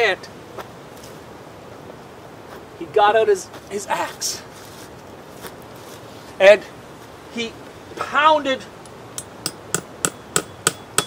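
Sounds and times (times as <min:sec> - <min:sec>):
axe striking nail into tree: 0:09.2 - 0:11.0.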